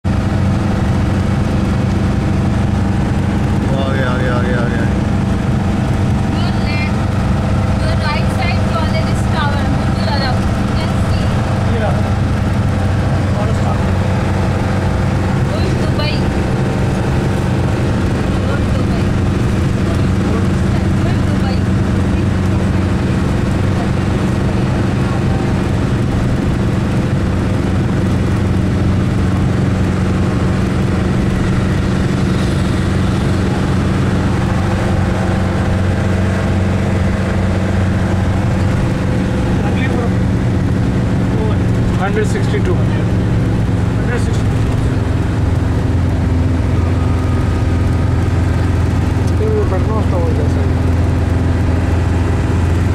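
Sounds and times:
road noise inside car: 0.0s - 52.9s
vehicle engine drone: 0.0s - 52.9s.

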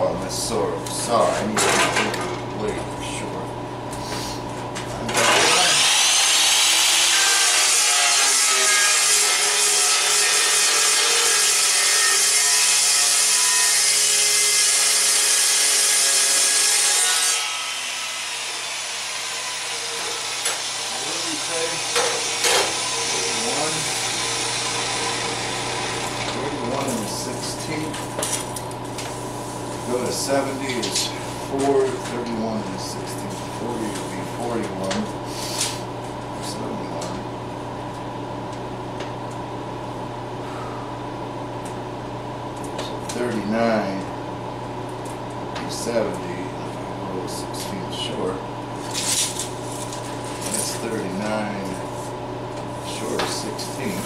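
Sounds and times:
chop saw cutting steel: 5.1s - 26.9s.

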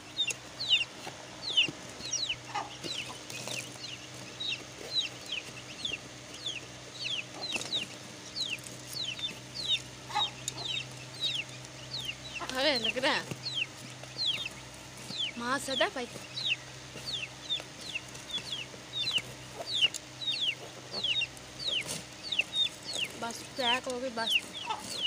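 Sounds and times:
chicks peeping: 0.0s - 25.0s.

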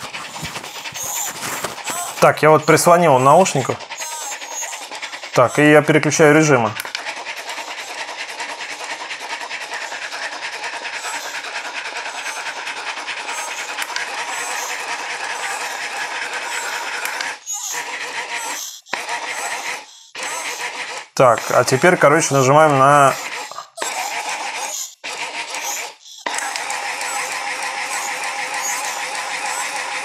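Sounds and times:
tinny rapidly pulsing earbud audio: 0.0s - 20.6s, 21.2s - 30.0s.

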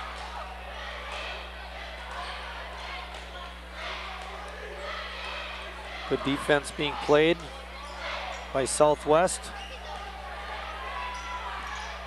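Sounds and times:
crowd murmur: 0.0s - 12.0s
electrical hum: 0.0s - 12.0s.

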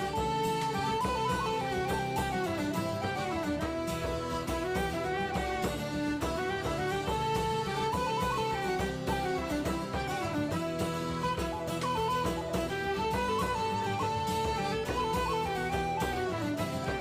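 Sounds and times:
instrumental music with steady beat: 0.0s - 17.0s.

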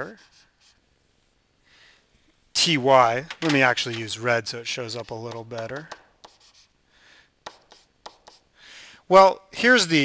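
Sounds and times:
stylus scratching on tablet: 0.0s - 0.8s, 4.6s - 6.8s, 7.4s - 8.5s.

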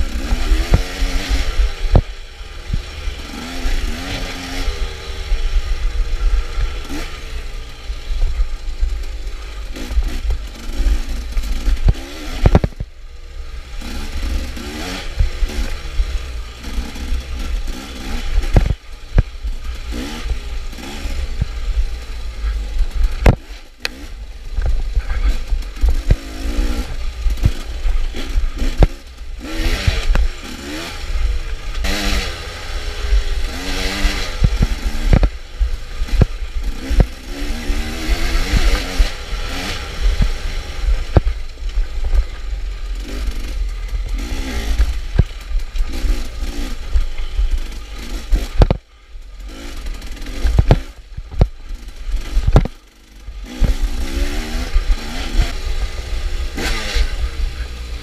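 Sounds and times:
bike knocking and rattling over bumps: 0.0s - 58.0s
dirt bike engine revving: 0.0s - 58.0s.

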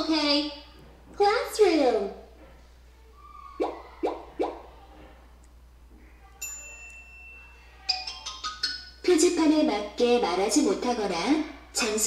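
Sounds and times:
bright ringing ding: 6.4s - 7.9s.

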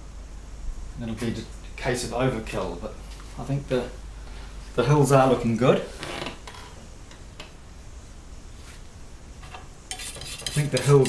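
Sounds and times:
low room hum: 0.0s - 11.0s
paintbrush tapping and scraping: 9.4s - 11.0s.

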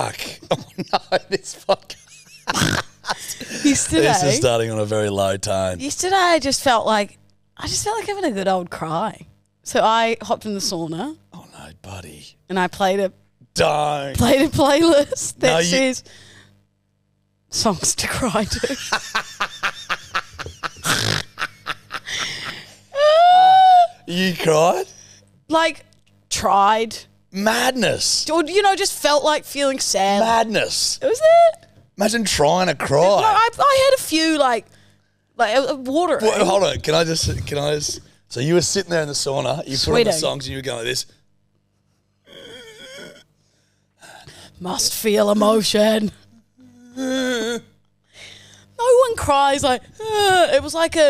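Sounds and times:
man laughing hard: 0.4s - 4.2s, 18.5s - 23.2s
person mock-crying wail: 22.9s - 24.1s.

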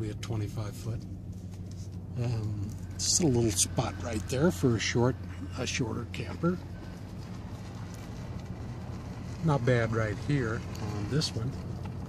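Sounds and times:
truck engine and road hum: 0.0s - 12.0s.

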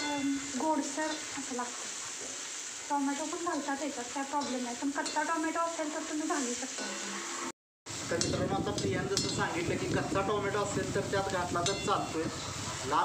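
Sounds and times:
vegetables sizzling in a pan: 0.0s - 13.0s
metal ladle scraping a pan: 4.4s - 7.5s.

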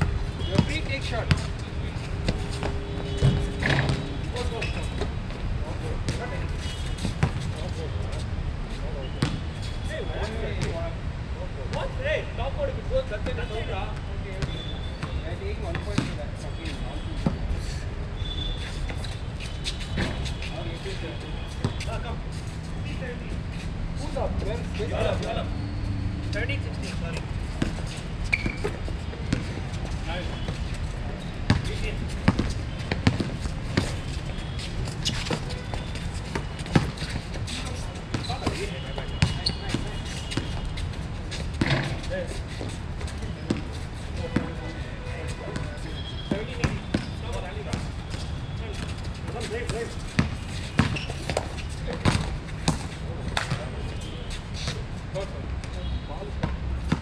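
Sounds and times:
basketball bouncing on hard court: 0.0s - 1.5s, 31.5s - 37.2s, 41.6s - 42.0s, 46.3s - 48.9s, 49.7s - 52.9s.

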